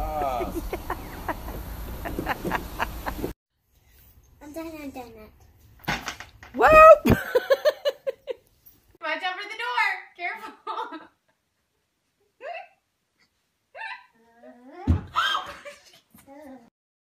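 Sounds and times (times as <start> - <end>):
young child vocalizing: 13.8 - 15.4.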